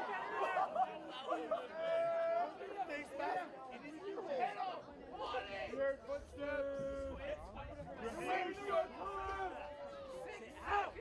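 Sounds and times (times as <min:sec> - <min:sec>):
people chattering and calling out: 0:00.0 - 0:11.0.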